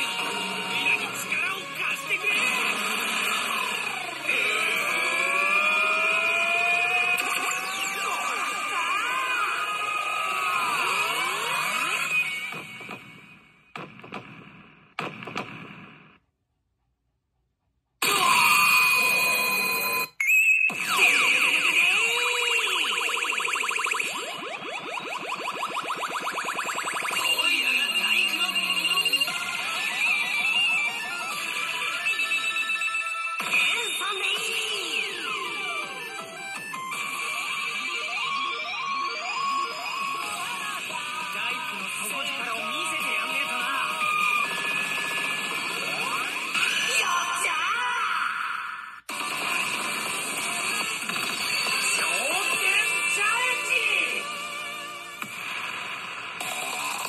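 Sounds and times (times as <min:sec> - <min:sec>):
rising electronic tone: 0:00.0 - 0:13.2
pachinko machine electronic music: 0:00.0 - 0:15.9, 0:18.0 - 0:47.5, 0:49.1 - 0:57.0
fast synthesized chirps: 0:20.2 - 0:33.3.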